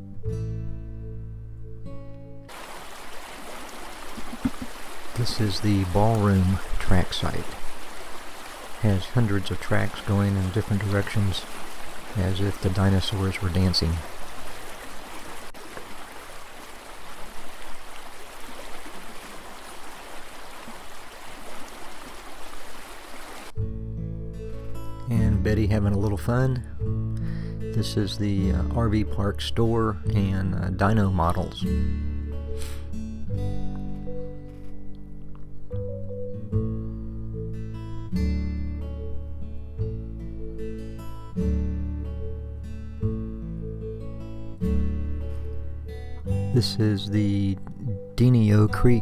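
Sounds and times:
acoustic guitar music: 0:00.0 - 0:02.5, 0:04.1 - 0:07.8, 0:08.8 - 0:14.0, 0:23.5 - 0:49.0
river flowing over rocks: 0:02.5 - 0:23.5
stream water rushing: 0:02.5 - 0:23.6.

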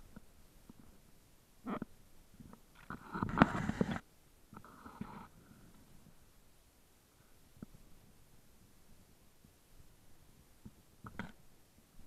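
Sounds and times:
leaves rustling against camera: 0:02.5 - 0:05.4.

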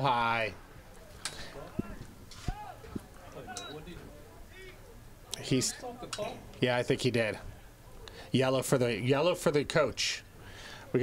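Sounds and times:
faint shouts of players and spectators: 0:00.0 - 0:05.4.

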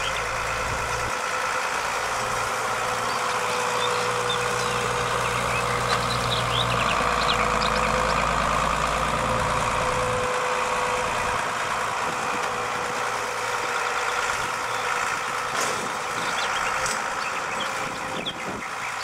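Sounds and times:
forage harvester chopper whine: 0:00.0 - 0:19.0
tractor running under load: 0:00.0 - 0:19.0.

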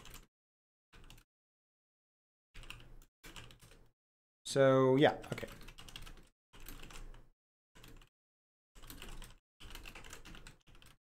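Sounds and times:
computer keyboard typing: 0:00.0 - 0:00.3, 0:01.0 - 0:01.3, 0:02.6 - 0:03.9, 0:05.2 - 0:08.1, 0:08.8 - 0:11.0.

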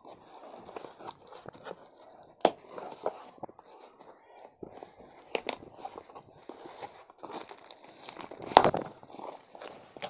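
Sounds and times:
bubble wrap crinkling: 0:00.0 - 0:10.0.

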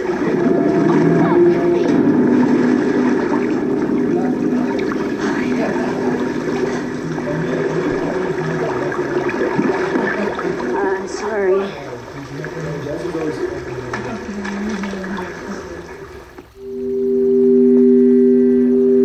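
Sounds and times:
murmured voices: 0:00.0 - 0:16.4
watery rushing: 0:00.0 - 0:17.3.

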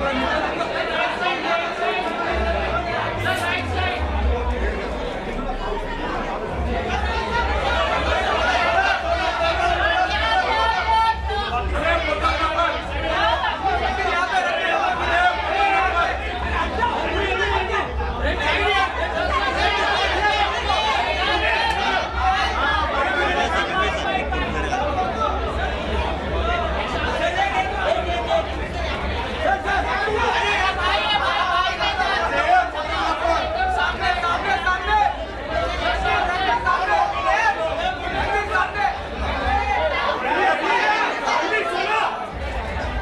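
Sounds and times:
chatter of many voices: 0:00.0 - 0:43.0.

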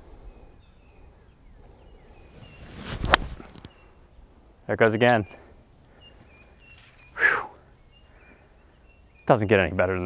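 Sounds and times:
faint outdoor ambience: 0:00.0 - 0:10.0
bird chirps: 0:00.2 - 0:10.0
golf club swing whoosh: 0:02.3 - 0:03.8.

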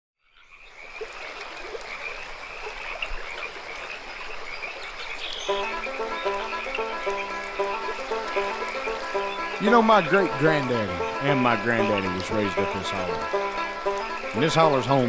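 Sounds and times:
frogs croaking: 0:00.2 - 0:15.0
music with picked notes: 0:05.5 - 0:15.0.

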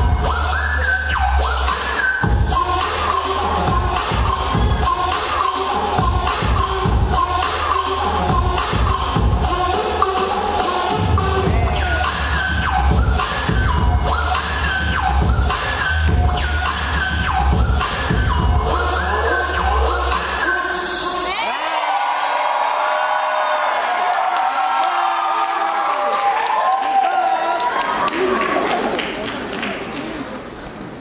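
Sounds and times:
hip-hop track with heavy bass: 0:00.0 - 0:21.3
audience cheering and screaming: 0:21.1 - 0:28.9.

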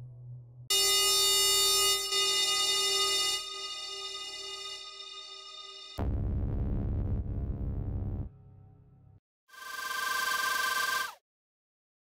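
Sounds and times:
low held synthesizer tone: 0:00.0 - 0:09.2
bright held synthesizer tone: 0:00.7 - 0:06.0.

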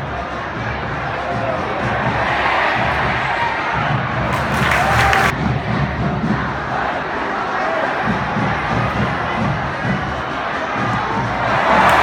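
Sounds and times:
stadium crowd shouting and cheering: 0:00.0 - 0:12.0.

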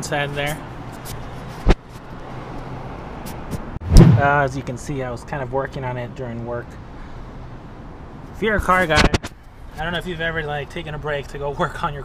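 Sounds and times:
low hum: 0:03.8 - 0:04.4
sharp knock: 0:03.8 - 0:04.4.

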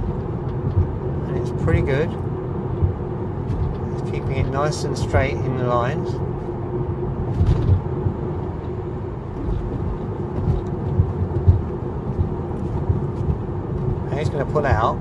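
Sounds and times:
faint steady hum: 0:00.0 - 0:15.0
road and tyre rumble: 0:00.0 - 0:15.0.

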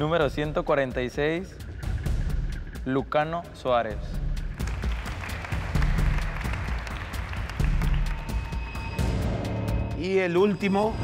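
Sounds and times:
background music: 0:00.0 - 0:11.0
children applauding: 0:04.6 - 0:08.8.

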